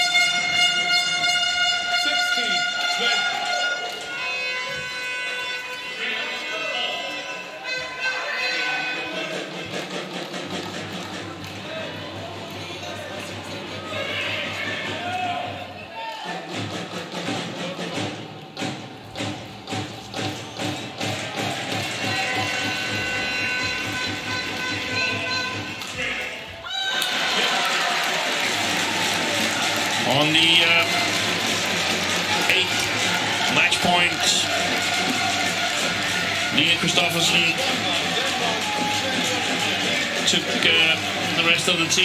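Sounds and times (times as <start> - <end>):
crowd cheering and shouting: 0.0 - 17.4, 20.2 - 42.0.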